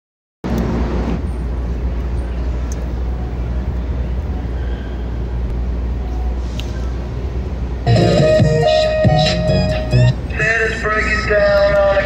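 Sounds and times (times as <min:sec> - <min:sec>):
street traffic rumble: 0:00.4 - 0:12.0
wind: 0:00.4 - 0:12.0.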